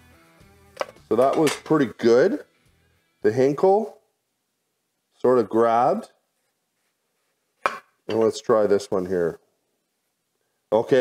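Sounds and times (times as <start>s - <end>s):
man speaking: 1.1s - 2.5s, 3.2s - 4.1s, 5.2s - 6.2s, 8.1s - 9.5s, 10.7s - 11.0s.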